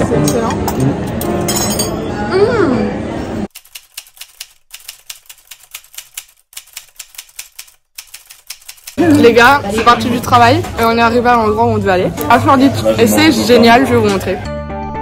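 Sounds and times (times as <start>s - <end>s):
background music: 9.0s - 15.0s.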